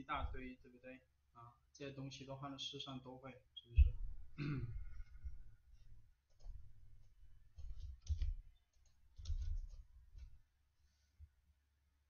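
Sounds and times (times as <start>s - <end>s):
computer keyboard typing: 7.6s - 9.8s.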